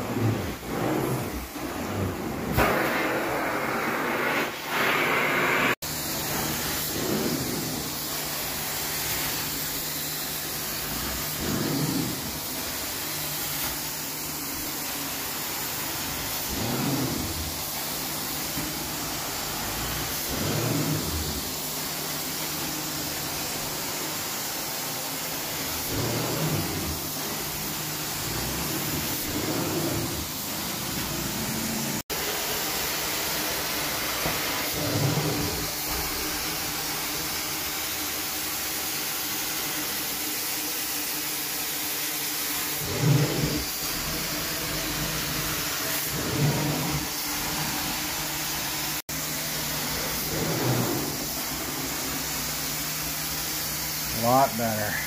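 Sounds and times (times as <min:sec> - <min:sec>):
carpet extractor suction and spray: 0:00.0 - 0:55.0.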